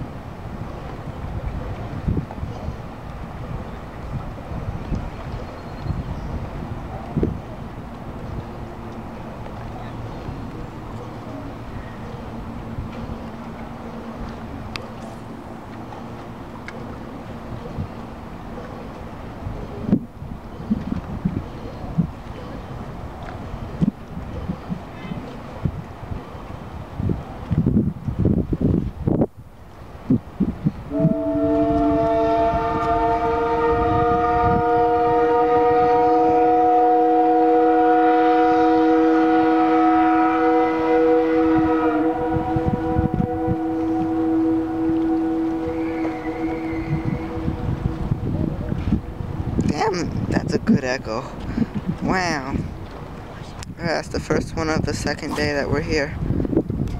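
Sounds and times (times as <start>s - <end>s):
steam whistle chime blast: 30.9s - 47.6s.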